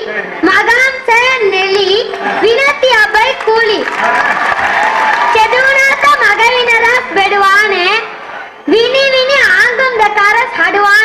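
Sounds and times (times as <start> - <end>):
boy speaking into a microphone: 0.0 - 3.9, 5.3 - 8.1, 8.7 - 11.0.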